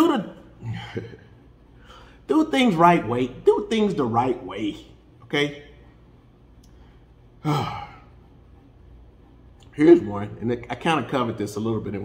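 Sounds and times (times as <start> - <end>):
man sighing: 7.4 - 8.1.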